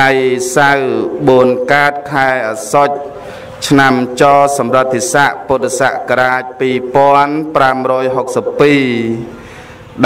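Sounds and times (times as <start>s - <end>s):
man chanting: 0.0s - 9.3s.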